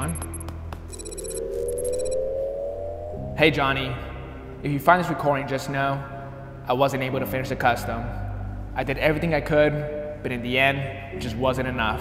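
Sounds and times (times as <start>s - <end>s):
rapid high electronic beeps: 0.0s - 2.4s
slowly rising tone: 0.9s - 4.8s
low steady drone: 1.0s - 11.9s.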